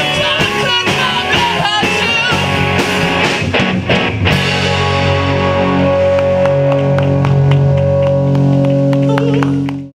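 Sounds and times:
drums striking: 0:00.0 - 0:09.6
guitars and bass sustained chord: 0:00.0 - 0:09.9.

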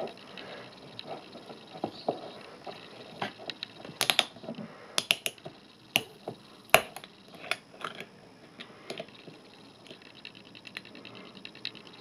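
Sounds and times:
bottle screw cap clicking and cracking: 0:04.0 - 0:04.3, 0:05.0 - 0:05.4, 0:06.0 - 0:08.1.

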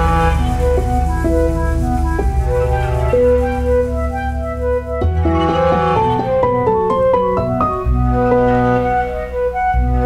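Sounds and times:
deep bass piano note: 0:00.0 - 0:08.3
held piano chords: 0:00.0 - 0:10.0.

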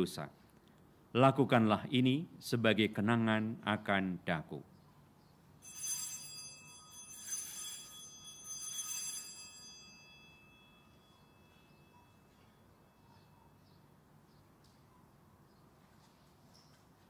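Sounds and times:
altar bells ringing: 0:05.6 - 0:13.8.

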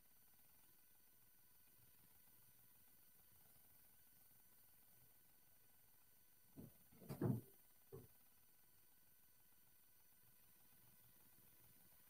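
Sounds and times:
short knock: 0:06.6 - 0:08.1.

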